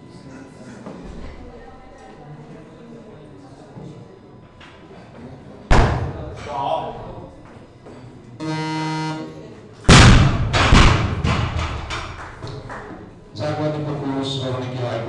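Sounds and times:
electronic tone: 8.4s - 9.4s
bumper plates bouncing and knocking: 9.9s - 12.2s.

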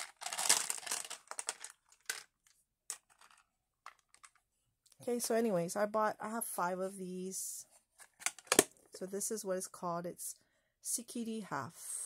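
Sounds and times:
plastic beads clattering in container: 0.0s - 4.4s.

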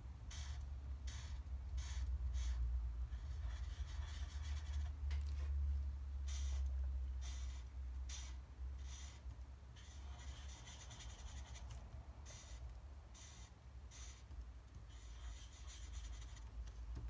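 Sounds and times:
steady low hum: 0.0s - 17.0s
marker rubbing on paper: 0.3s - 5.0s, 6.3s - 16.6s.

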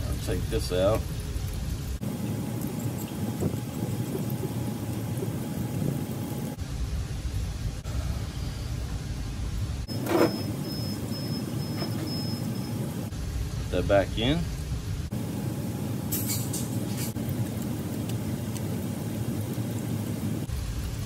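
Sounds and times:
machine rumbling: 0.0s - 13.8s.

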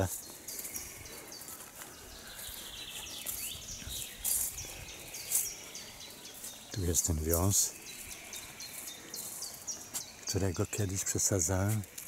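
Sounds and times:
outdoor background noise: 0.0s - 12.0s
small birds chirping: 0.0s - 12.0s.

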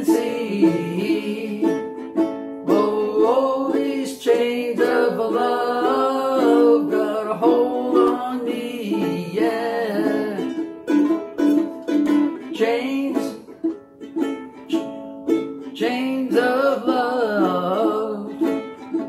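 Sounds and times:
ukuleles strumming chords: 0.0s - 19.0s.

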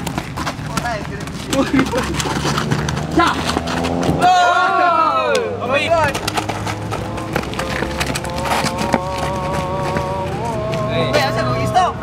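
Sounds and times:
quick footsteps on dirt: 0.0s - 4.2s, 5.8s - 11.2s
man shouting: 4.2s - 6.1s.

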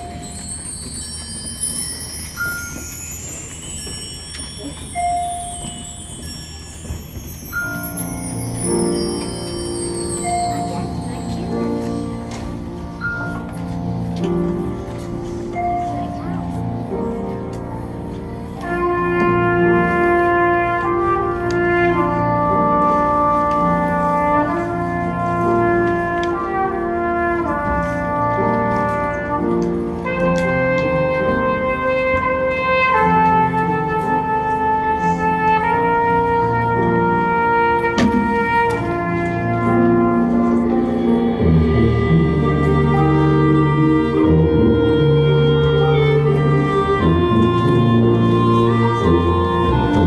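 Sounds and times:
piano chords: 0.0s - 50.0s
wind and brass band playing: 0.0s - 50.0s.

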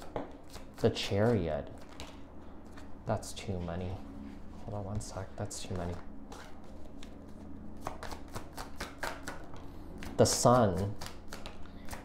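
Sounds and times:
cards being shuffled by hand: 5.6s - 12.0s.

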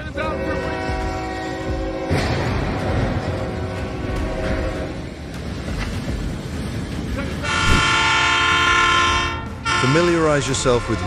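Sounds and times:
train horn blast: 0.1s - 5.2s, 7.4s - 11.0s.

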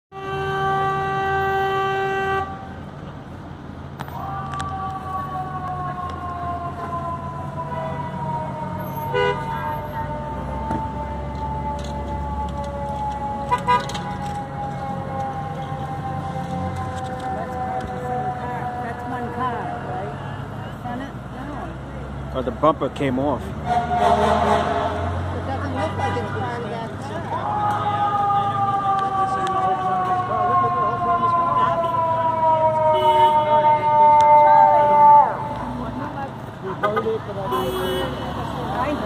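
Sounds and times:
vehicle horn blast: 0.1s - 2.7s, 9.1s - 9.5s, 23.6s - 25.2s, 33.0s - 33.5s, 36.8s - 38.3s.

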